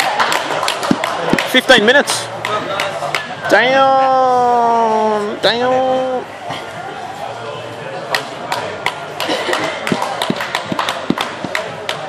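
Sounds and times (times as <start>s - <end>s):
hand claps: 0.0s - 1.6s, 8.1s - 12.0s
hall chatter: 0.0s - 12.0s.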